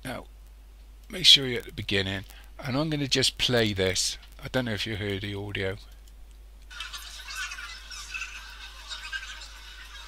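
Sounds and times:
high-pitched sped-up chatter: 6.7s - 10.0s.

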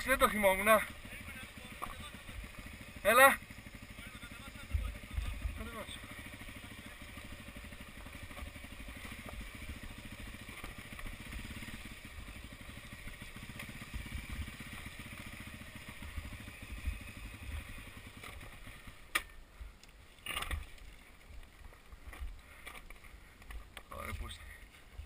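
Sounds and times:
dirt bike engine at low revs: 0.0s - 25.0s.

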